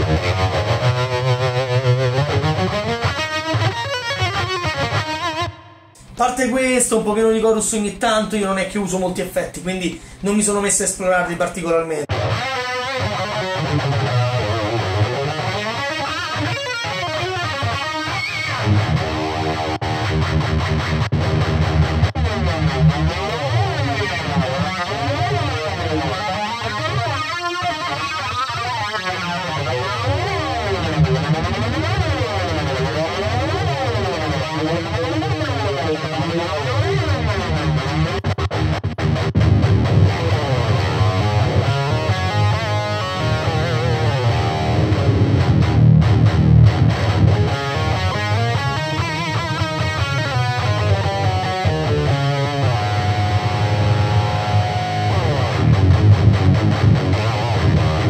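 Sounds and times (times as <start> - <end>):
electric guitar with modulation effect: 0.0 - 6.2, 12.1 - 58.0.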